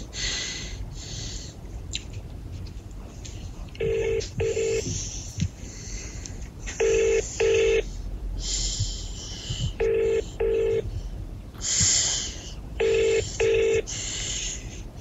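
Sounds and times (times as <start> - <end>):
faint hiss: 11.6 - 12.6.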